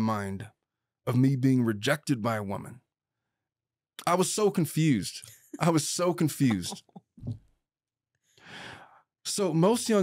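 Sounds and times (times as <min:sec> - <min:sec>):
breath into microphone: 0:08.3 - 0:09.0.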